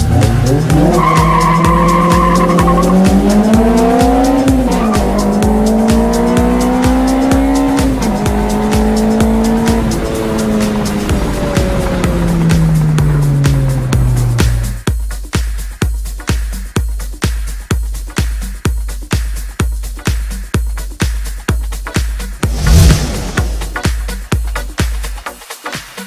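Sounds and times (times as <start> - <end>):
car engine accelerating hard: 0.0 - 14.8, 22.4 - 23.9
background music with steady beat: 0.0 - 26.0.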